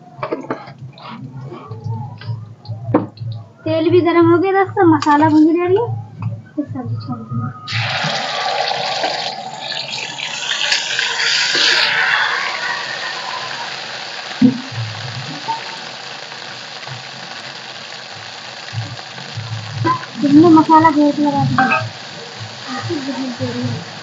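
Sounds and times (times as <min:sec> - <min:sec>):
spices sizzling in hot oil: 0:07.7 - 0:24.0.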